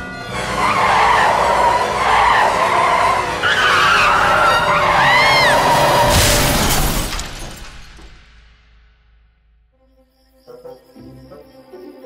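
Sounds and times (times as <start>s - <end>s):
music: 0.0s - 6.5s, 8.3s - 12.0s
car tyres screeching: 0.0s - 7.0s.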